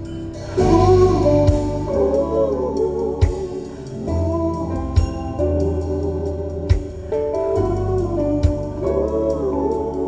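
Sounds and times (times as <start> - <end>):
music through car audio system: 0.0 - 10.0
sharp drum hit: 0.4 - 2.1.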